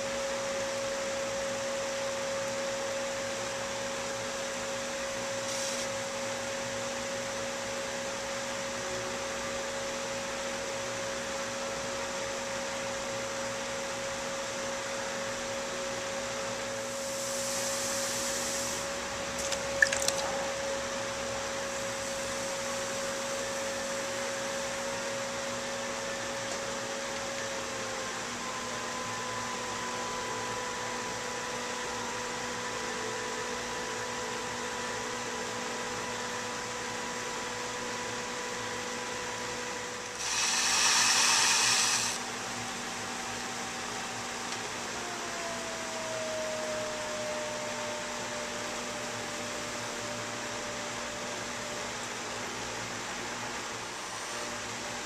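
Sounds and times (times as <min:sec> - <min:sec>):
pottery wheel motor humming: 0:00.0 - 0:55.0
brief hiss: 0:05.4 - 0:06.0, 0:16.9 - 0:18.8, 0:40.1 - 0:42.2.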